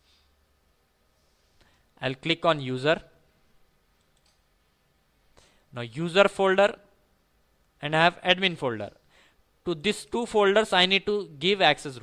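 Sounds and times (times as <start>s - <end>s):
computer mouse clicks: 4.0s - 4.4s.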